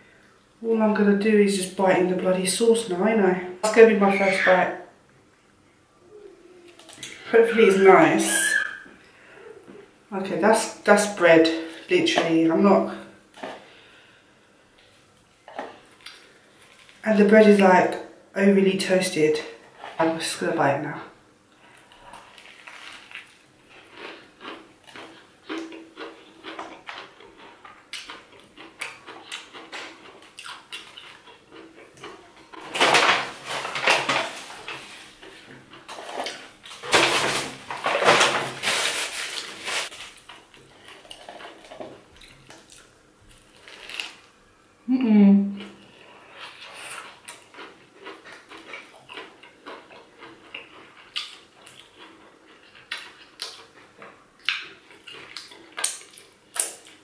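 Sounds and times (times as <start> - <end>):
crunchy chewing: 14.8 - 17.0, 21.6 - 32.8, 38.6 - 44.3, 45.6 - 57.0
paper napkin crinkling: 21.7 - 24.2, 33.3 - 41.7.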